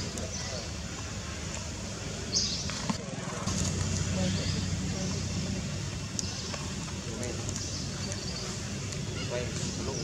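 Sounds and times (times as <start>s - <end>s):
low engine-like rumble: 0.0s - 10.0s.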